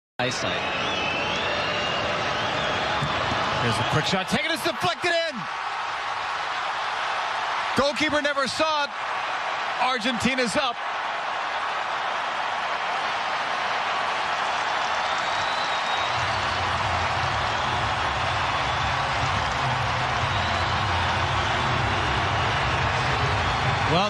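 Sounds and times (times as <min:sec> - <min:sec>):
stadium crowd cheering: 0:00.2 - 0:24.0.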